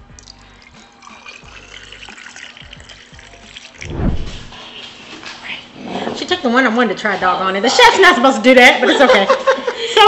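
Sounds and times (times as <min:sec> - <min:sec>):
liquid pouring over ice: 0:00.0 - 0:03.9
low thump: 0:03.8 - 0:04.6.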